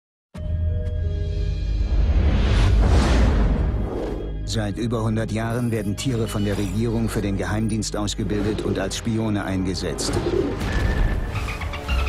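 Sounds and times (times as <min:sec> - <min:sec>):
film trailer music: 0:00.3 - 0:12.0.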